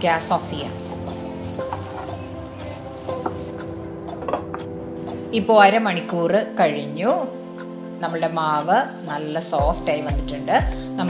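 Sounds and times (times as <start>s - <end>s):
light sizzle: 0.0s - 4.4s.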